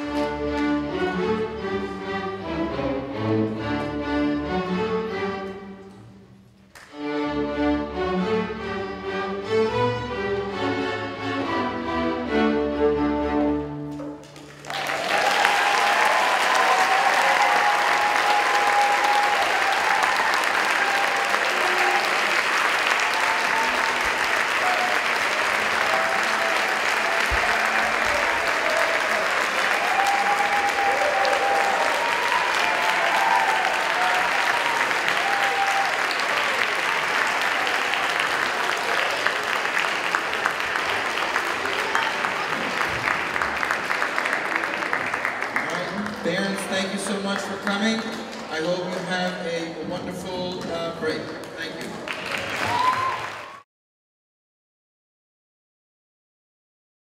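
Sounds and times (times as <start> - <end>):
audience applauding: 14.2 - 53.7.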